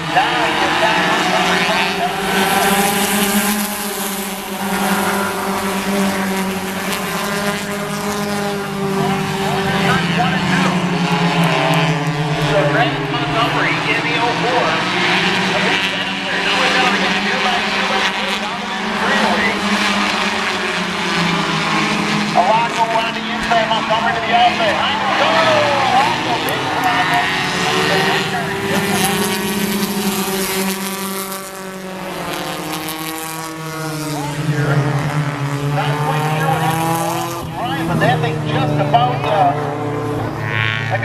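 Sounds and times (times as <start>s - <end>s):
voices: 0.0s - 30.6s, 34.0s - 41.0s
race car engines droning: 0.0s - 41.0s.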